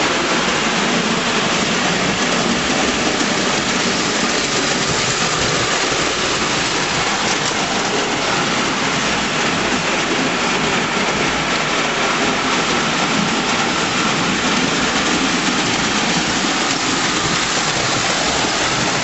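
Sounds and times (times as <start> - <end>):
toy train rattling on track: 0.0 - 19.0.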